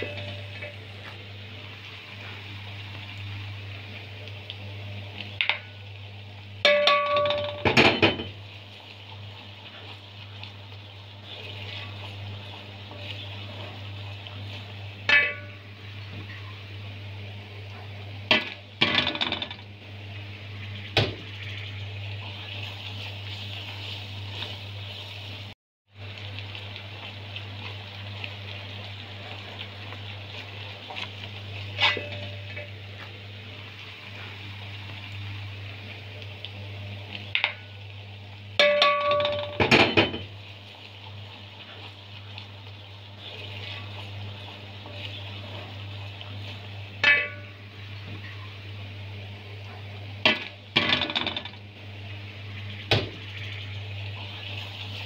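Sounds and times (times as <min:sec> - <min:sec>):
vegetables sizzling in oil: 0:00.0 - 0:55.0.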